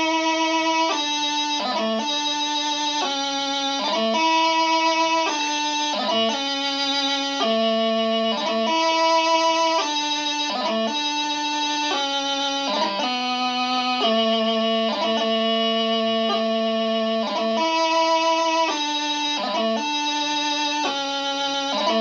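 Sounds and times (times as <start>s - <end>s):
practice chanter melody: 0.0s - 22.0s.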